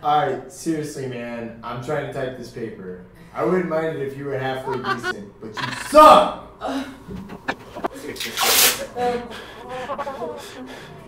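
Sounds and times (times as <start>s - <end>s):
indistinct human voices: 4.7s - 8.2s, 8.8s - 11.0s.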